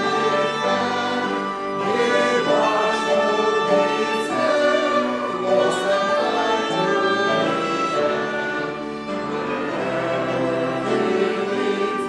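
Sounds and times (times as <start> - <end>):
accompanying instruments: 0.0 - 12.0
group singing a hymn: 0.0 - 12.0.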